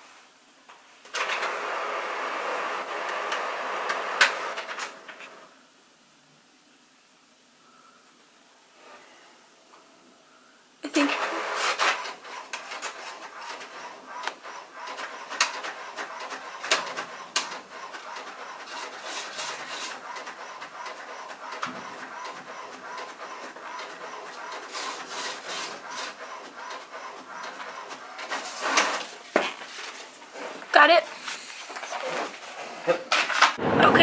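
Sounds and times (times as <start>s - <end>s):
inkjet printer whirring: 1.1s - 5.5s, 11.0s - 29.2s.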